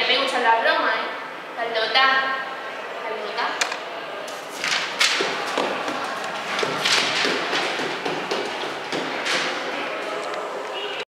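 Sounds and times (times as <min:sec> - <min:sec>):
echoing thumps and knocks: 0:04.5 - 0:09.8.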